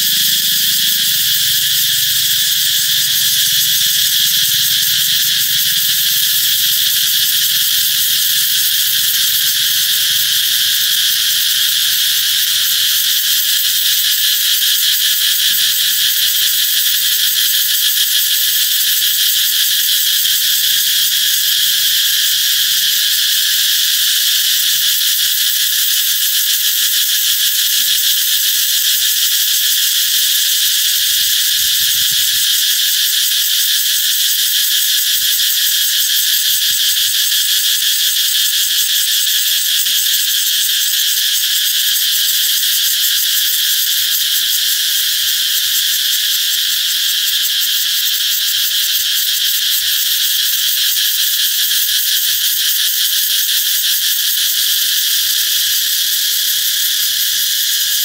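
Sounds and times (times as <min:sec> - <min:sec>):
cicadas buzzing: 0:00.0 - 0:58.0.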